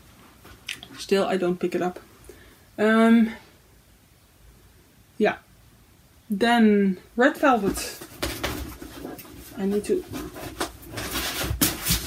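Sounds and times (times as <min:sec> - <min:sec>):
rustling and rubbing of fabric items: 0:07.3 - 0:12.0
items knocking and falling over: 0:07.6 - 0:12.0.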